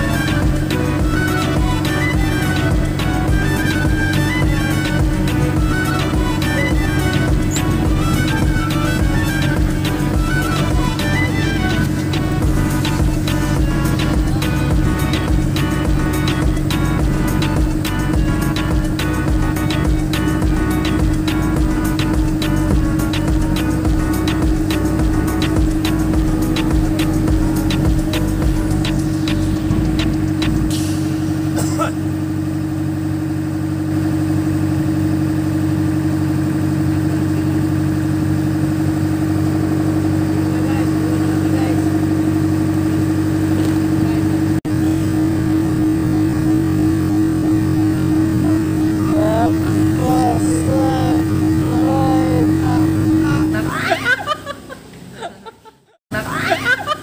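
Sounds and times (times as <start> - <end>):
background music with beat: 0.0 - 31.8
boat engine droning: 0.0 - 57.0.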